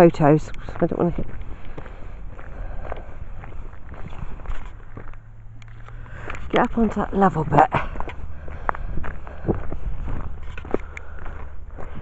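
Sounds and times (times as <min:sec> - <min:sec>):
wind rumble on microphone: 0:00.0 - 0:05.2, 0:06.1 - 0:12.0
footsteps on gravel: 0:00.0 - 0:12.0.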